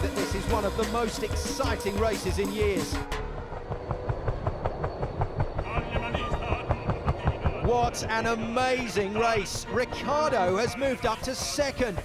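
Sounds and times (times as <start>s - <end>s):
engine whine: 0.0s - 12.0s
helicopter rotor beating: 0.0s - 12.0s
low rumble: 1.8s - 9.8s.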